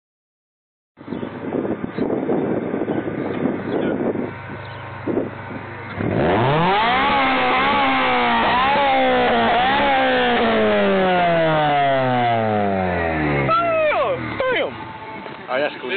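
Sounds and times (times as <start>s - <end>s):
car engine revving: 5.8s - 15.9s.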